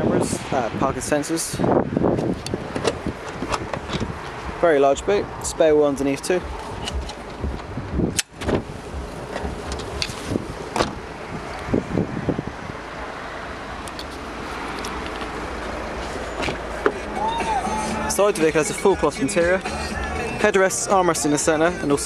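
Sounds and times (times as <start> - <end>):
low wind on microphone: 0.0 - 17.2.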